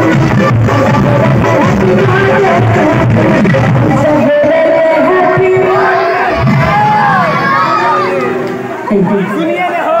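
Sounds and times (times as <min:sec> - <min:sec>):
crowd calling out and chattering: 0:00.0 - 0:10.0
amplified speech over pa: 0:01.2 - 0:06.6, 0:08.8 - 0:10.0.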